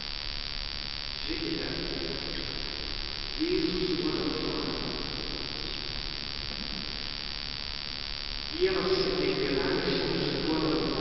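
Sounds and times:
steady hiss: 0:00.0 - 0:11.0
distant voice intoning: 0:03.4 - 0:07.0.

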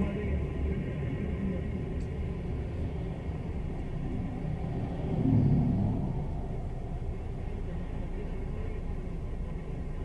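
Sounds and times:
car interior road rumble: 0:00.0 - 0:10.0.

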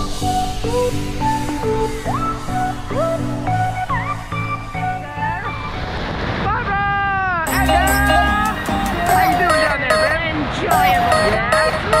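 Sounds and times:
background music: 0:07.5 - 0:12.0.

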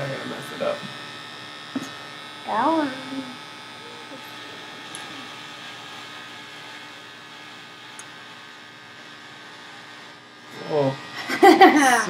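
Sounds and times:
electric beard trimmer buzzing: 0:00.0 - 0:12.0.

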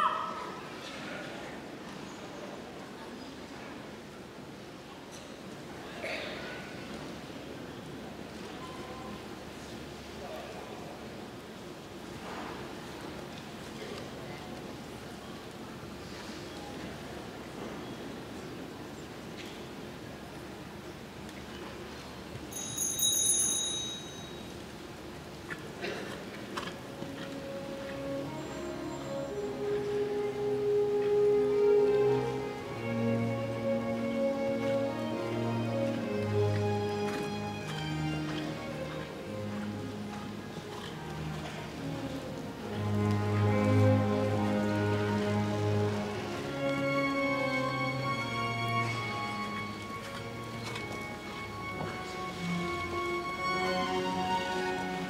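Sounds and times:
small bell ringing: 0:22.5 - 0:24.4
background music with held notes: 0:26.7 - 0:55.0.

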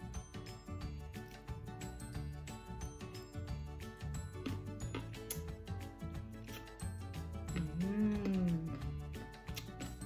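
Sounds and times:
music with steady beat: 0:00.0 - 0:10.0.

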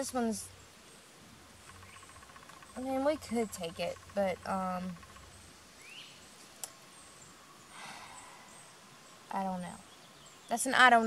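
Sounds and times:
faint rising bird chirp: 0:00.0 - 0:11.0
soft rustle of leaves: 0:00.0 - 0:11.0.

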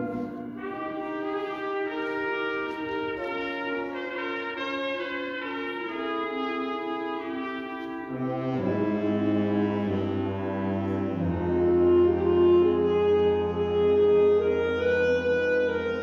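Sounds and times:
wind ensemble playing held chords: 0:00.0 - 0:16.0.

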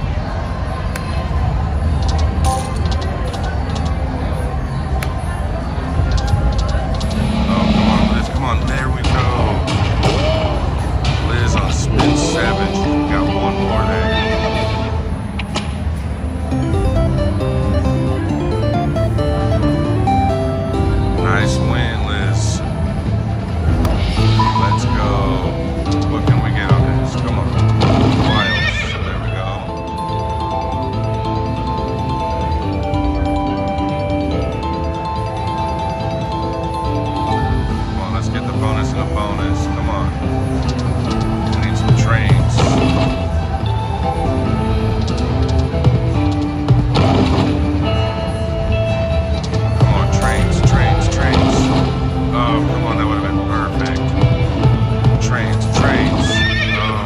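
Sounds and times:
slot machine game music: 0:00.1 - 0:57.0.

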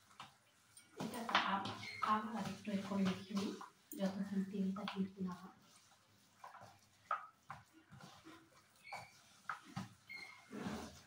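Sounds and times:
hands squelching batter: 0:00.0 - 0:11.0.

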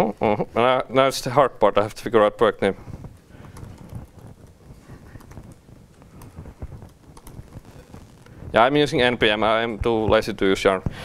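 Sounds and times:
low room noise: 0:00.0 - 0:11.0
computer keyboard keystrokes: 0:03.4 - 0:04.5, 0:05.2 - 0:05.6, 0:06.2 - 0:07.4.

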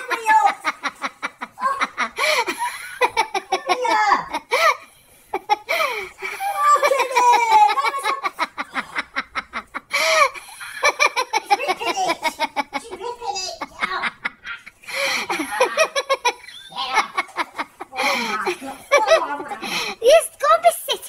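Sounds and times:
people laughing hard: 0:00.0 - 0:20.0.

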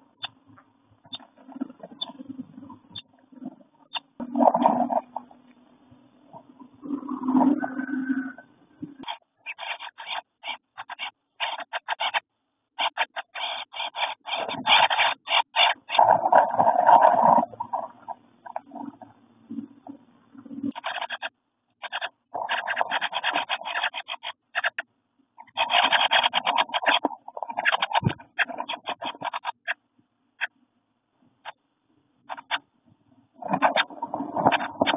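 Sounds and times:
nestlings rustling and chattering: 0:09.0 - 0:12.2, 0:12.8 - 0:19.0, 0:19.6 - 0:24.8, 0:25.4 - 0:29.8, 0:33.4 - 0:34.9.

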